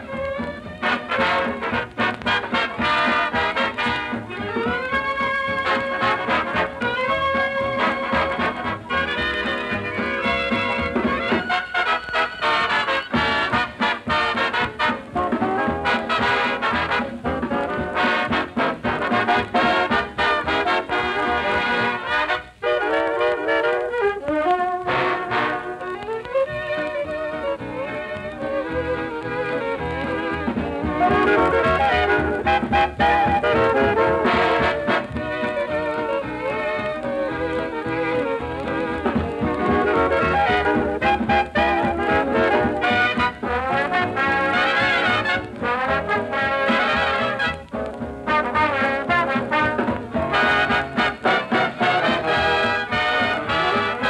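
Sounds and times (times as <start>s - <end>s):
swing dance band playing: 0.0s - 54.0s
trumpets and trombones: 0.0s - 54.0s.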